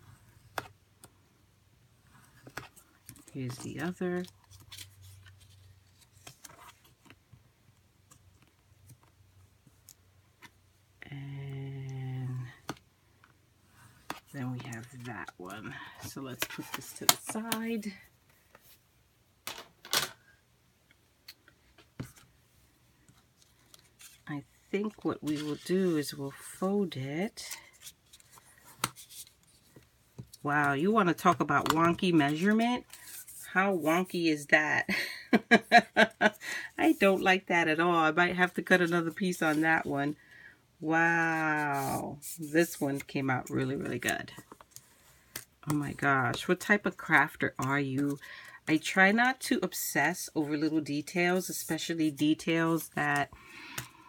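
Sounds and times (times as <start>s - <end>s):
paper folding and creasing: 23.2s - 26.7s.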